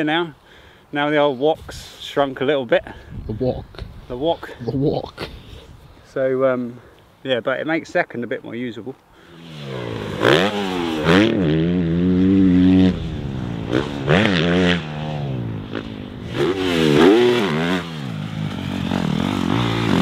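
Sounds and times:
motocross bike engine revving: 9.3s - 20.0s.

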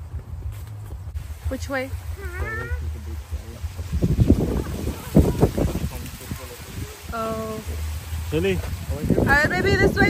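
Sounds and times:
small child's high call: 2.2s - 2.8s.

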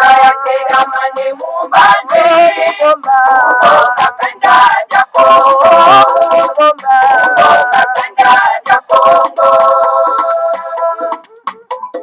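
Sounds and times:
group of voices singing: 0.0s - 11.4s.

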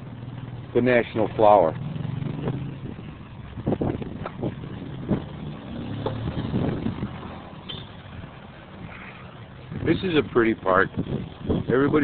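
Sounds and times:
traffic engine hum: 0.0s - 12.0s.

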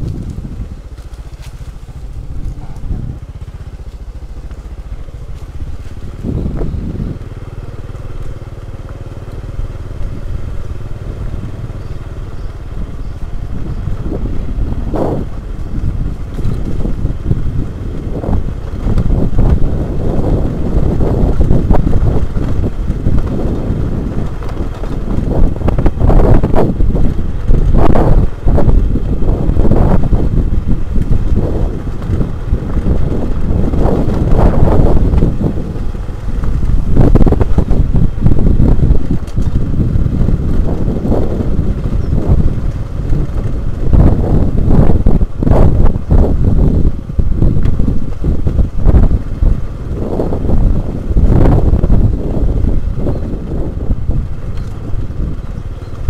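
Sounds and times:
bike knocks and rattles: 0.0s - 12.0s, 12.9s - 56.0s
motorcycle engine running: 0.0s - 56.0s.

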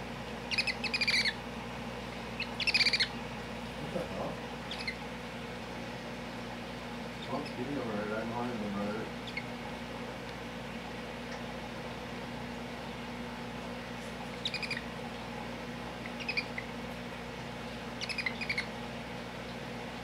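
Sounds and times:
baby hedgehog squeaking: 0.5s - 1.4s, 2.4s - 3.2s, 4.6s - 5.0s, 9.2s - 9.5s, 14.4s - 14.9s, 16.0s - 16.7s, 18.0s - 18.7s.

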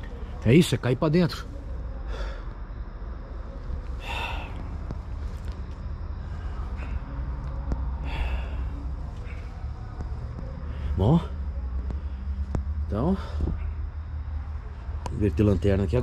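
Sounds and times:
person breathing out: 4.0s - 4.7s.

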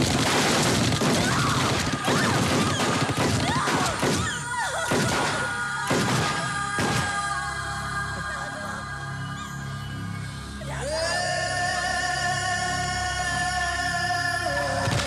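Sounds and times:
gunshot effects: 0.0s - 7.2s
action film music: 0.0s - 15.0s.

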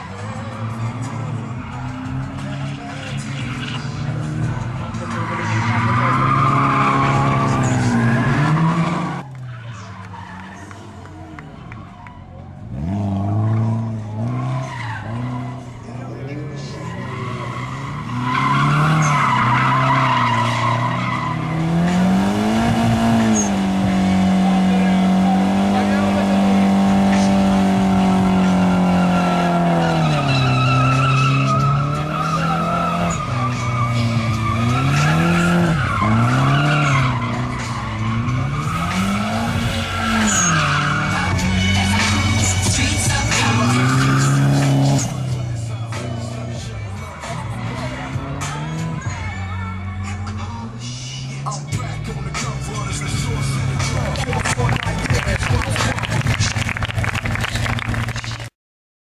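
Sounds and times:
tyres squealing: 0.0s - 10.9s, 12.0s - 55.8s
car engines revving hard: 0.0s - 58.5s.

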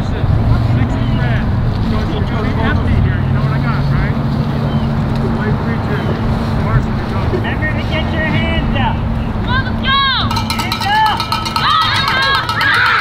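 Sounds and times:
high-pitched shouts and calls: 9.4s - 13.0s.

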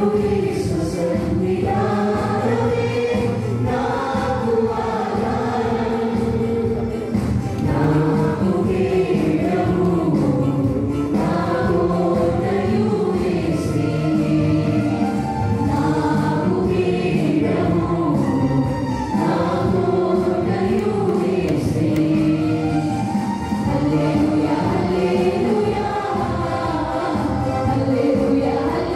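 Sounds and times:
group singing in unison: 0.0s - 28.9s
keyboard accompaniment: 0.0s - 28.9s.

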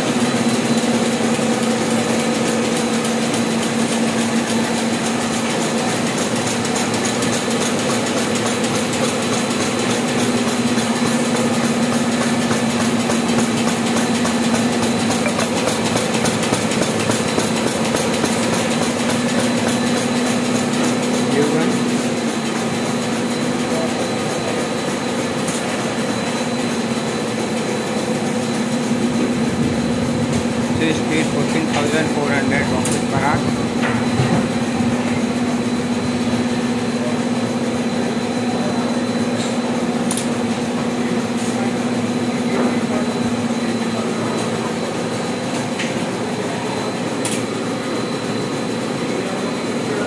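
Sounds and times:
machine whirring: 0.0s - 50.0s.

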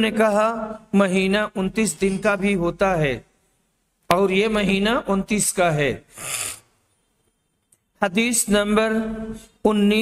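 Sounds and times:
man's sharp breath in: 6.1s - 6.7s.

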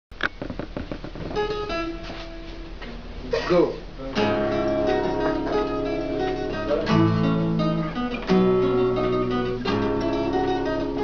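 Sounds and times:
acoustic guitar played loosely: 0.1s - 11.0s.

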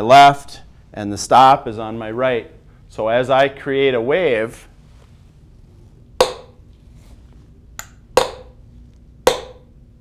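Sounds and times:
hammer striking metal pin: 6.2s - 6.6s, 7.8s - 8.6s, 9.3s - 9.7s.

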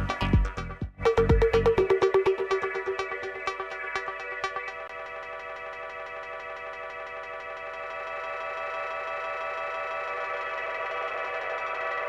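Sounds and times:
sustained synthesizer chords: 0.0s - 12.0s.

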